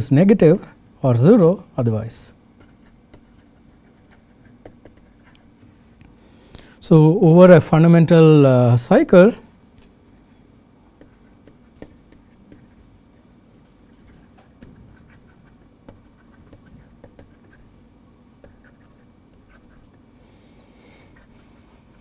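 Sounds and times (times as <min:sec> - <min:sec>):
stylus tapping and scratching on tablet: 0:02.6 - 0:05.8, 0:11.0 - 0:17.7, 0:18.4 - 0:20.0.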